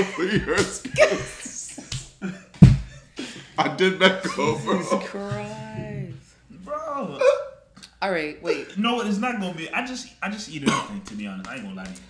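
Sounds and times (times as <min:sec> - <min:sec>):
person laughing: 0:00.0 - 0:03.0, 0:04.1 - 0:06.0.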